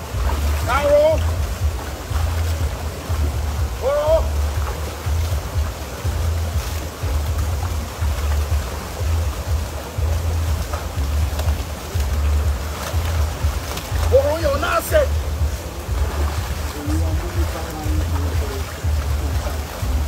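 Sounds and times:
background music with pulsing bass: 0.0 - 20.0
river rushing over rocks: 0.0 - 20.0.

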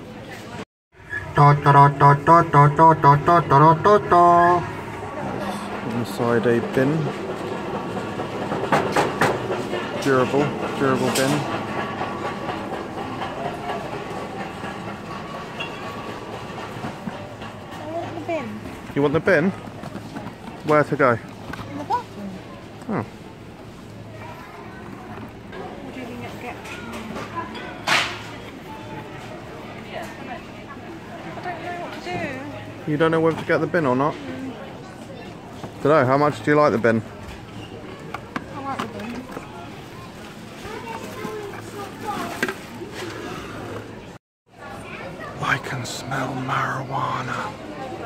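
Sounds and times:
shop background noise: 0.0 - 48.0
steady background noise: 0.0 - 48.0.

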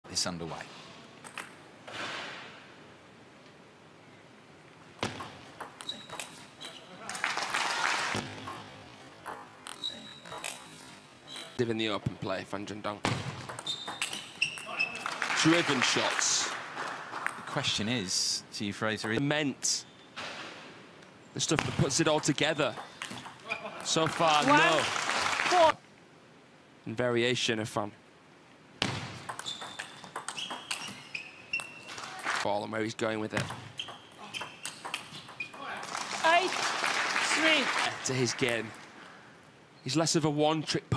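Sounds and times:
shoes squeaking on floor: 5.7 - 7.0, 9.3 - 11.6, 13.5 - 15.1, 29.3 - 32.2, 33.5 - 35.7.

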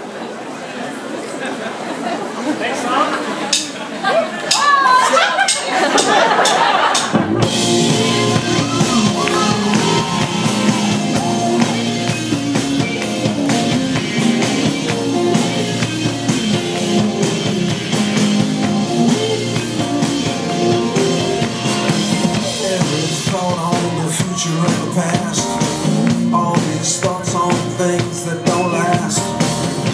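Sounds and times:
live band playing: 3.4 - 29.9.

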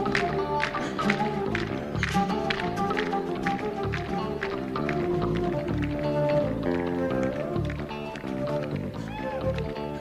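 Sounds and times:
flute playing: 0.0 - 10.0
live rock band: 0.0 - 10.0.

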